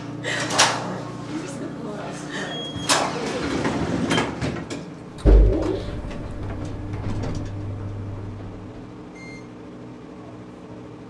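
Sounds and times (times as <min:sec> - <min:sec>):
elevator doors sliding shut: 0:05.2 - 0:08.9.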